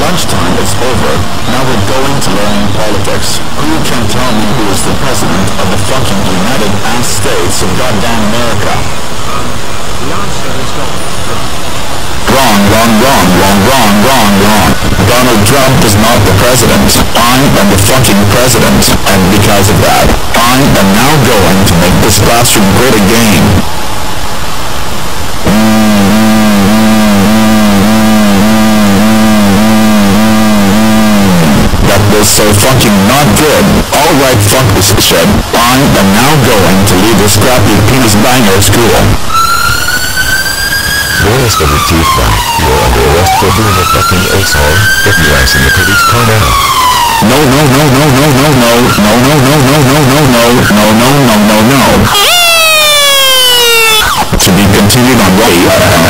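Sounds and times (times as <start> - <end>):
hissing noise: 0.0 - 23.8, 24.4 - 56.0
descending whine: 0.0 - 56.0
wobbling distorted buzzing tone: 0.0 - 56.0.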